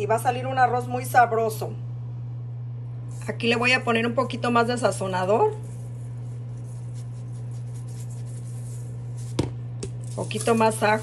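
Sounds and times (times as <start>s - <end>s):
steady low hum: 0.0s - 11.0s
seasoning patter: 5.4s - 11.0s.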